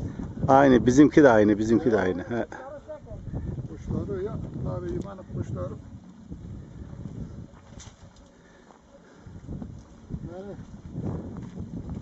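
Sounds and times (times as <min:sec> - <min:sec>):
wind rumble on microphone: 0:00.0 - 0:08.6, 0:09.2 - 0:12.0.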